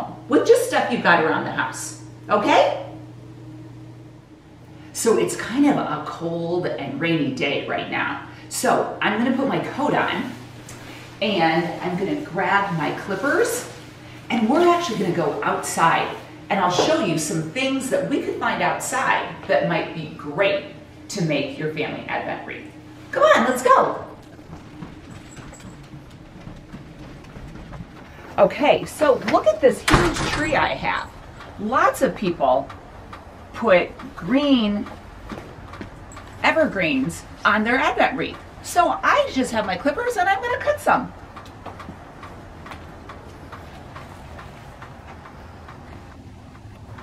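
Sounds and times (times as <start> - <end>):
low outdoor rumble: 0.0 - 47.0
footsteps on hard floor: 24.3 - 29.5, 34.8 - 36.4.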